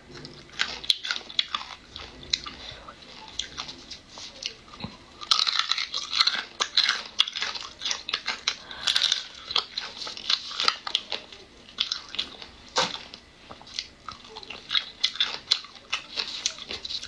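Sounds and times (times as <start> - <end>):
person chewing and crunching food: 0.0 - 17.0.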